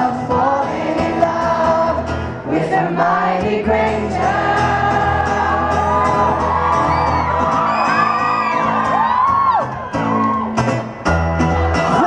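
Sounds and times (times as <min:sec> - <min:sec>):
audience screaming and whooping: 0:04.5 - 0:12.0.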